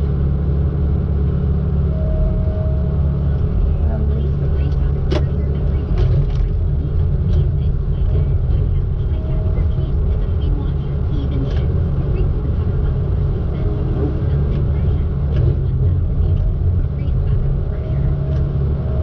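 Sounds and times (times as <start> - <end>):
diesel engine running: 0.0 - 19.0.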